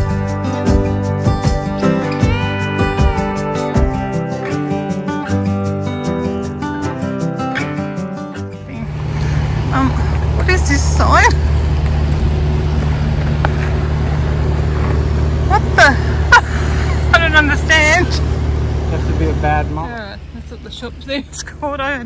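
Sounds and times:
vehicle engine humming: 8.4s - 22.0s.

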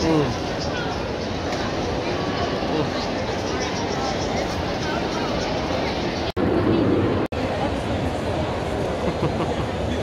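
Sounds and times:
indistinct crowd chatter: 0.0s - 10.0s
steady low rumble: 6.3s - 8.8s.

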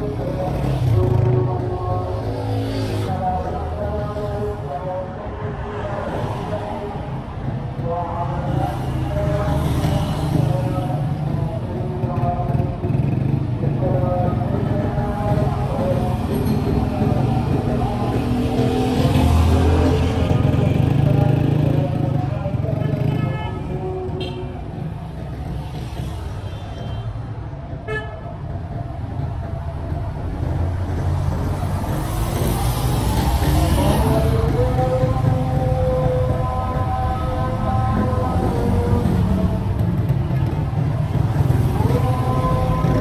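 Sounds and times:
engines rumbling past: 0.0s - 23.2s, 27.2s - 43.0s
car horn toots: 27.8s - 28.3s.

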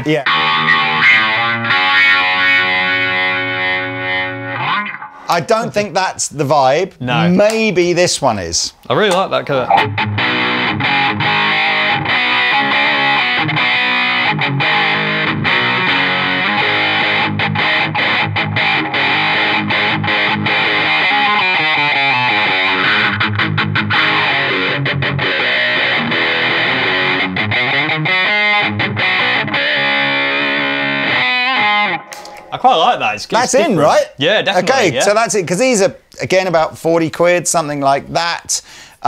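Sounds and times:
distorted electric guitar wobbling: 0.0s - 5.3s, 9.6s - 35.4s.

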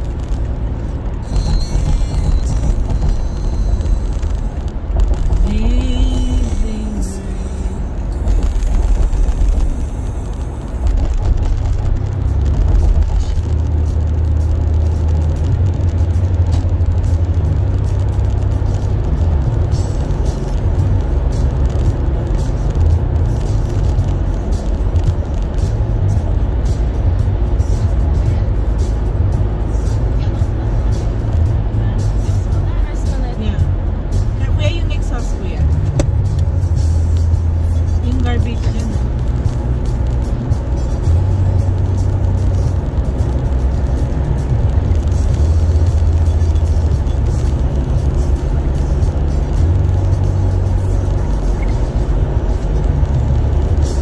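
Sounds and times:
car road noise rumble: 0.0s - 54.0s
music playing: 0.0s - 54.0s.

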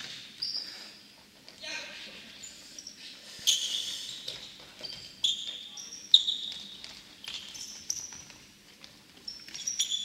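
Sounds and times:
sneakers squeaking on wooden floor: 3.5s - 8.5s, 9.1s - 10.0s.

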